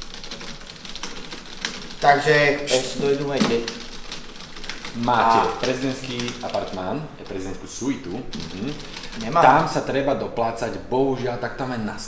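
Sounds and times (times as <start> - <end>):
fast typing on keyboard: 0.0 - 10.8.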